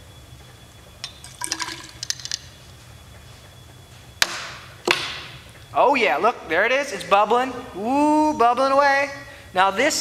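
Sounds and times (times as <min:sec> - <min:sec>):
liquid pouring into glass cylinder: 0:01.2 - 0:02.4.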